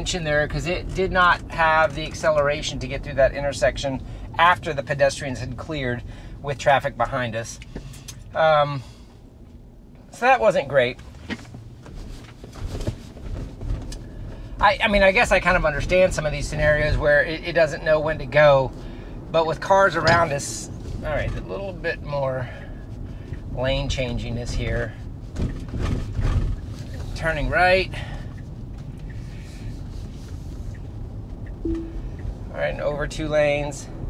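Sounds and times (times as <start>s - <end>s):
road and tyre rumble: 0.0s - 34.0s.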